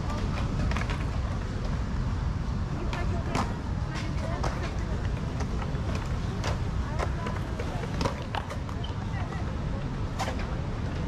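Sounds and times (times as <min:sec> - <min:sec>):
skateboards clacking on concrete: 0:00.0 - 0:02.1, 0:02.7 - 0:11.0
crowd chatter: 0:00.0 - 0:11.0.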